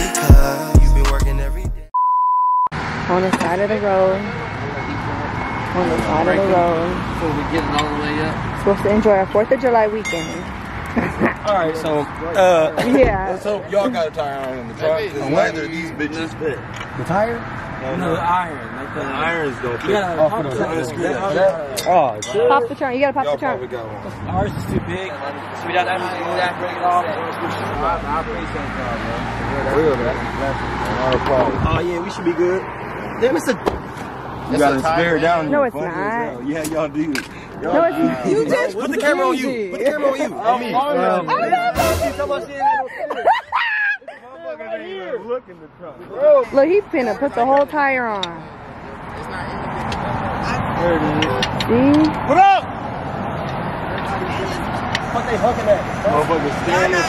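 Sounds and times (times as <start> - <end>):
hip-hop music: 0.0 - 2.0, 8.5 - 12.2, 41.2 - 42.9
high electronic beep: 1.9 - 2.7, 4.5 - 6.3
outdoor voices: 2.6 - 57.0
people talking indistinctly: 3.1 - 57.0.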